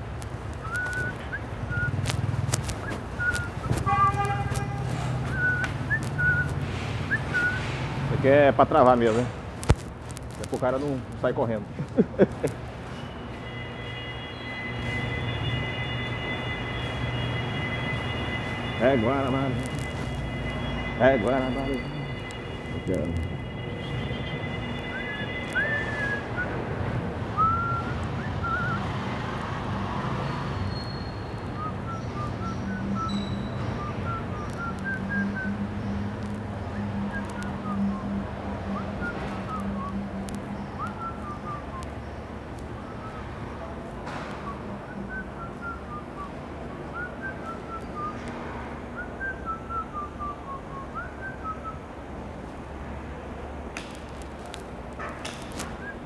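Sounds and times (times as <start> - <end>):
person whistling: 0.6 - 2.0, 2.8 - 3.9, 5.2 - 7.7, 24.8 - 26.6, 27.4 - 28.8, 30.9 - 35.6, 40.8 - 41.8, 44.4 - 46.3, 46.9 - 48.2, 49.0 - 51.8.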